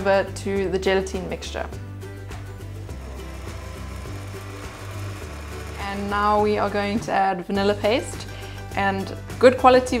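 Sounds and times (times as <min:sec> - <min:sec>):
background music: 0:00.0 - 0:10.0
stand mixer motor running: 0:02.9 - 0:06.4.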